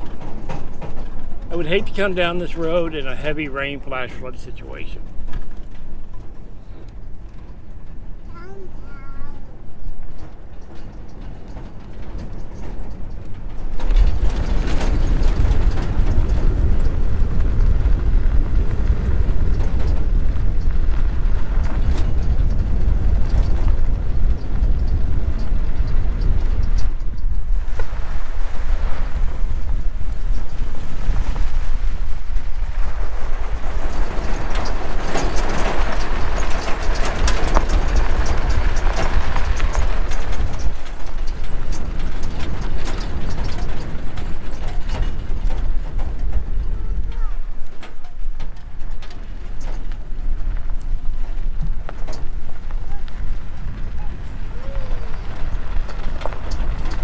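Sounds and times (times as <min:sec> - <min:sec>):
tyres crunching on gravel: 0:00.0 - 0:08.0, 0:09.6 - 0:57.0
truck engine rumble: 0:00.0 - 0:57.0
wind buffeting microphone: 0:00.0 - 0:57.0.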